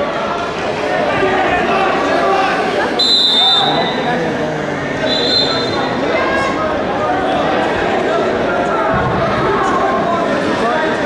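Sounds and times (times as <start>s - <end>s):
crowd chatter: 0.0s - 11.0s
referee's whistle blast: 3.0s - 3.9s, 5.1s - 5.8s.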